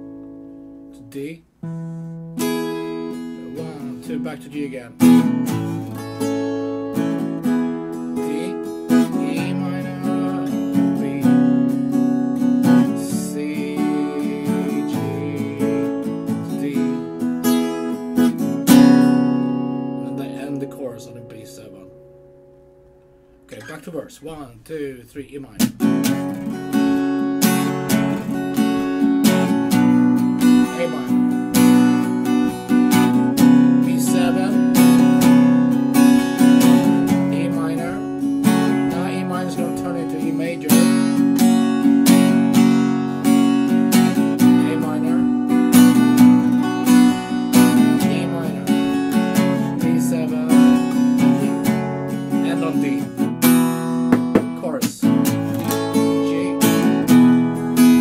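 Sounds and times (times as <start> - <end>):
acoustic guitar strumming: 0.0 - 58.0.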